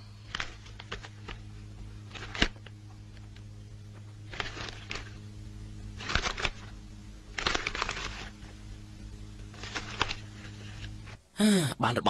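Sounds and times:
faint low hum: 0.0 - 12.0
newspaper pages rustling: 0.2 - 1.4, 2.1 - 3.4, 4.0 - 5.2, 6.0 - 8.6, 9.5 - 11.2.

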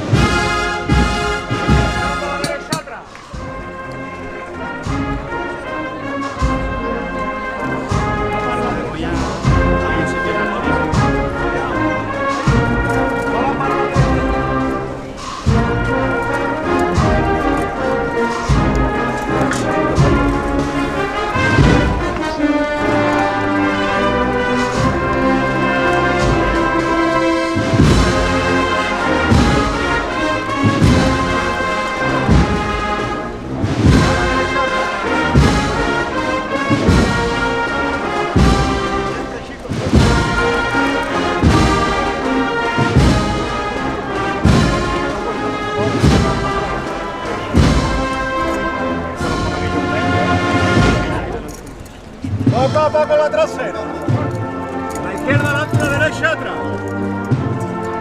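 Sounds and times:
brass band playing a march: 0.0 - 58.0
steady drum beat: 0.0 - 58.0.

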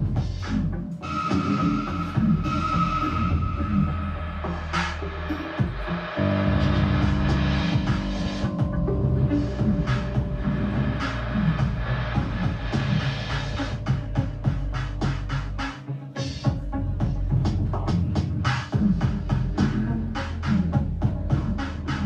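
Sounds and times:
synthesizer music: 0.0 - 22.0.

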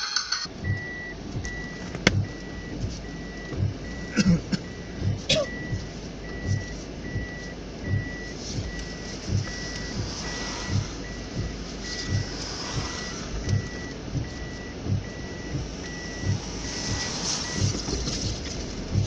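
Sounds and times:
road noise: 0.0 - 19.0
electronic warning beep: 0.5 - 19.0
low dull thumps: 0.5 - 19.0.

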